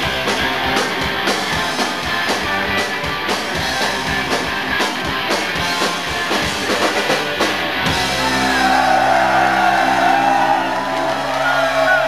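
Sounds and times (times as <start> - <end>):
live rock band playing: 0.0 - 12.0
crowd whooping and cheering: 8.0 - 12.0.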